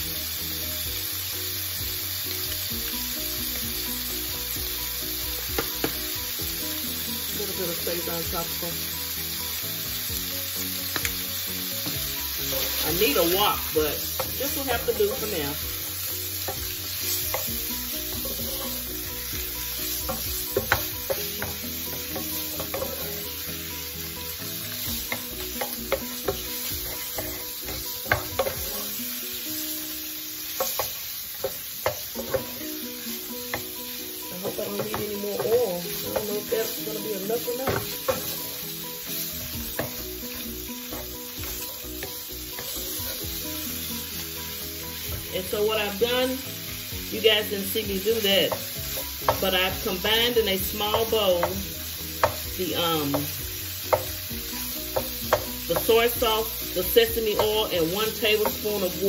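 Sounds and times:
food sizzling in oil: 0.0s - 59.0s.

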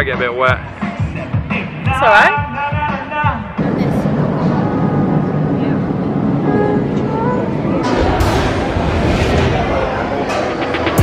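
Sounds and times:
dense background rumble: 3.6s - 11.0s.

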